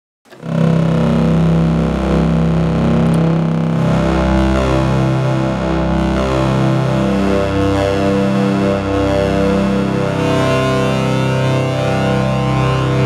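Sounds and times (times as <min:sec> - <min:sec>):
analog synthesizer chords: 0:00.3 - 0:13.0.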